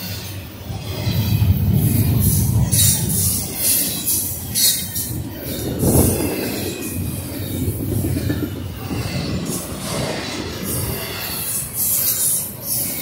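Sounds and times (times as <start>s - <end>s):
freight train rolling rumble: 0.0s - 13.0s
wheel hiss and squeal: 8.8s - 13.0s.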